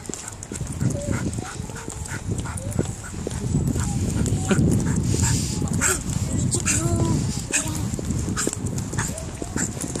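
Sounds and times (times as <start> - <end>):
footsteps on paving: 0.0 - 10.0.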